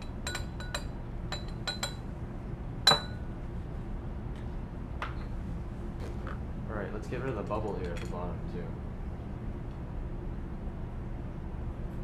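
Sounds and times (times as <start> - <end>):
glass clinking against glass: 0.0 - 2.0, 2.9 - 3.2.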